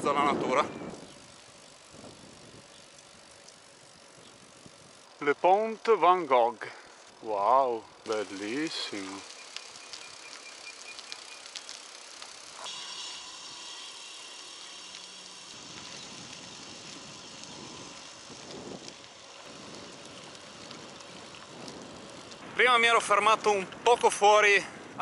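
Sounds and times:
bicycle tyres hissing: 0.0s - 25.0s.

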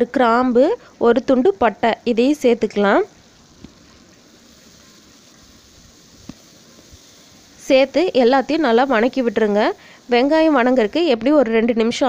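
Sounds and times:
shallots frying in oil: 0.0s - 12.0s.

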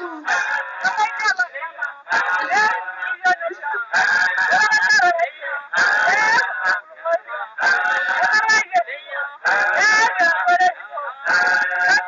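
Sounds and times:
voices singing a chant: 0.0s - 12.0s.

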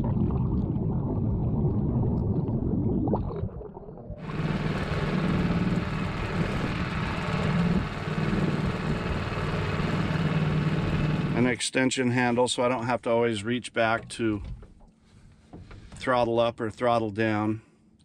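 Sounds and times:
propeller churning underwater: 0.0s - 11.5s
water rushing: 3.1s - 11.5s
outboard motor hum: 3.2s - 11.6s.

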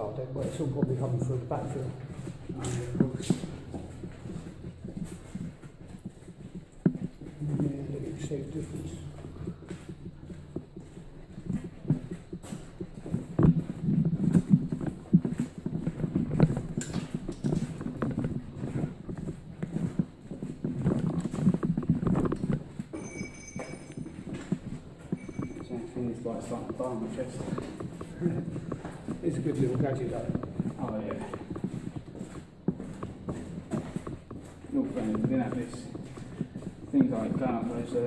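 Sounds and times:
footsteps on hard floor: 0.0s - 38.0s.

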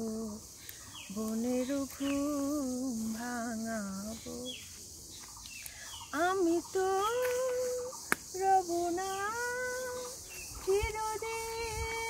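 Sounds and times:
woman singing unaccompanied: 0.0s - 4.9s, 5.8s - 12.0s.

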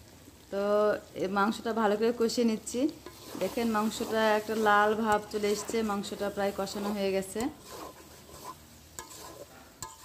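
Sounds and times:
meat sizzling in a pan: 0.0s - 10.0s
spatula stirring meat in pan: 2.9s - 10.0s
spatula clinking against pan: 7.4s - 10.0s.

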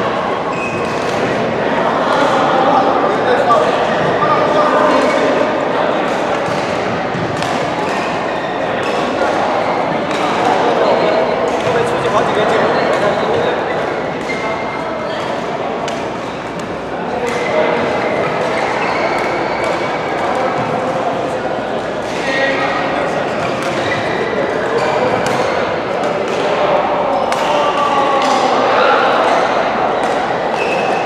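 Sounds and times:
crowd chatter in a hall: 0.0s - 31.0s
rackets hitting shuttlecocks: 6.0s - 10.7s, 24.8s - 28.5s.

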